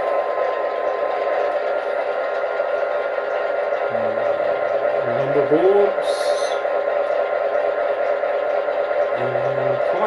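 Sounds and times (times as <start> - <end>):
diesel engine idle drone: 0.0 - 10.0.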